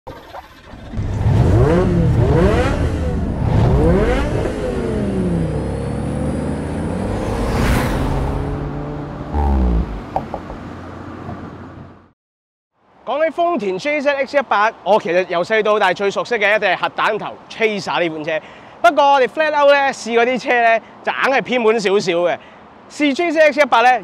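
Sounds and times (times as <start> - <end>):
car engine revving through gears: 0.9 - 12.0
whoosh: 6.6 - 10.3
low hit: 9.3 - 10.7.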